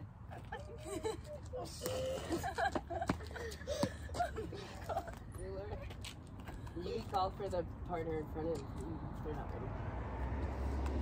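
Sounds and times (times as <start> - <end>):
girls talking and chuckling: 0.3 - 6.0.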